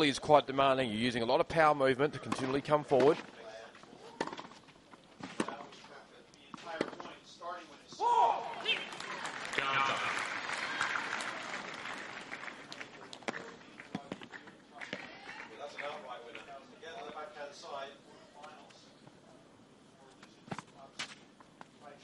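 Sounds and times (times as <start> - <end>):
racquets striking tennis ball: 4.1 - 5.8, 6.5 - 7.2
crowd applause: 8.5 - 13.9.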